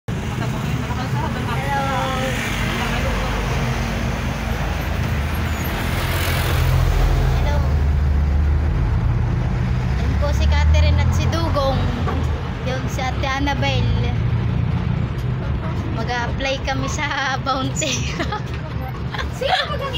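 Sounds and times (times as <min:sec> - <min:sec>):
vehicle engine and road noise: 0:00.1 - 0:19.9.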